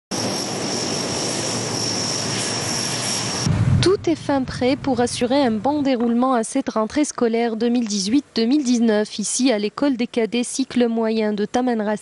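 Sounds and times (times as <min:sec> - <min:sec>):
turboprop engine drone: 0:00.1 - 0:05.9
high turbine whine: 0:00.1 - 0:06.1.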